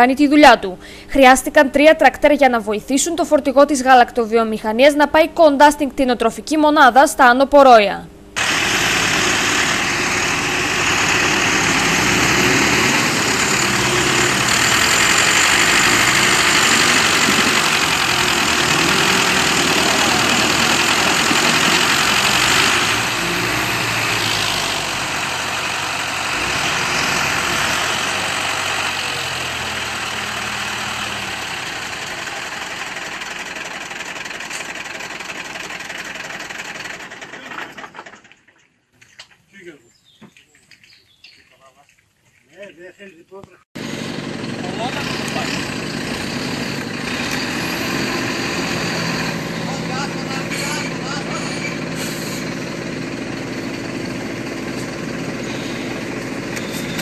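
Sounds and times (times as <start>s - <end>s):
tractor diesel engine: 8.3s - 38.6s, 43.8s - 57.0s
truck engine running hard: 8.4s - 38.2s, 43.8s - 57.0s.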